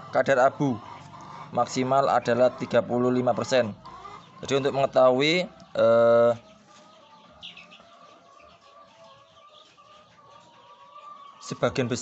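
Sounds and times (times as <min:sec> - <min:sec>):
hens clucking: 0:00.0 - 0:12.0.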